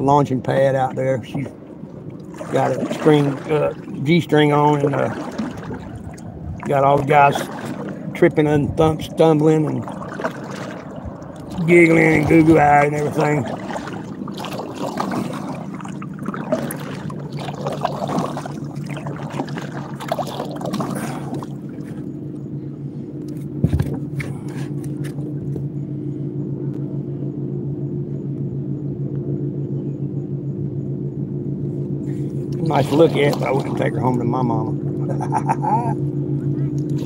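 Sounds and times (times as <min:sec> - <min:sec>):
water splashing: 0:00.0 - 0:22.2, 0:32.5 - 0:35.6
wind noise: 0:02.4 - 0:14.1.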